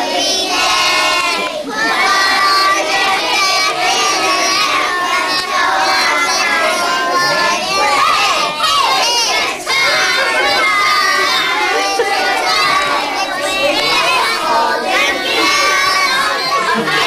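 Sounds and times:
children singing and shouting: 0.0 - 17.0.

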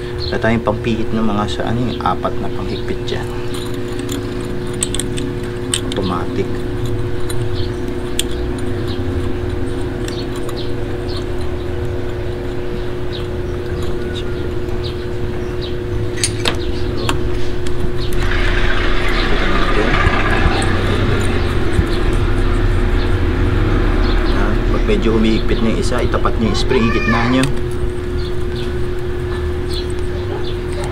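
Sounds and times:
low mechanical hum: 0.0 - 30.9
loud hissing: 18.2 - 27.6.

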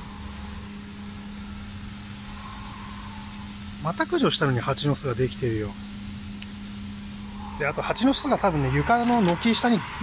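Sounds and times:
outdoor background noise: 0.0 - 10.0
steady low hum: 0.0 - 10.0.

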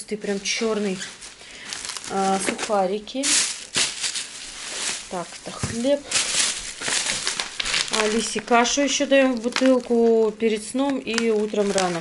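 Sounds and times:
plastic bags rustling: 0.0 - 12.0.

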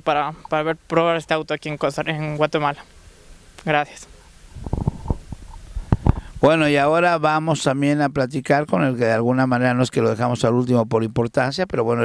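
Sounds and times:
microphone handling thumps: 4.5 - 6.5.

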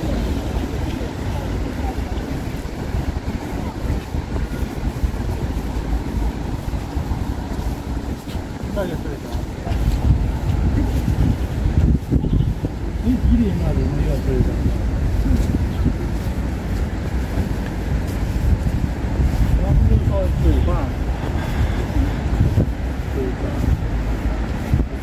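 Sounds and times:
distant traffic: 0.0 - 25.0
passers-by voices: 0.0 - 25.0
wind buffeting microphone: 0.0 - 25.0.

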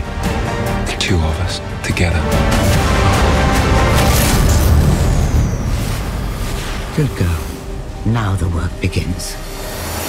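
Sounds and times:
faint music score: 0.0 - 10.0.

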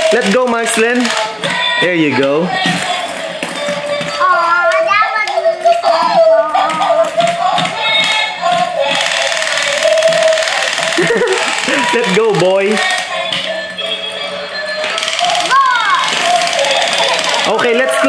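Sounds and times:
toy playing electronic melody: 5.4 - 18.0.

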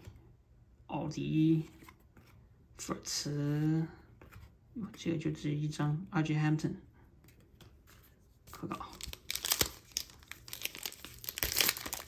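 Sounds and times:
foil wrapper tearing and crinkling: 8.9 - 12.0.

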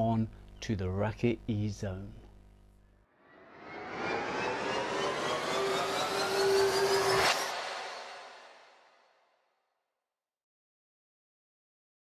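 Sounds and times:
whooshing riser: 3.2 - 9.2
upward gliding tones: 3.3 - 8.7
sharp hit: 3.3 - 9.1.

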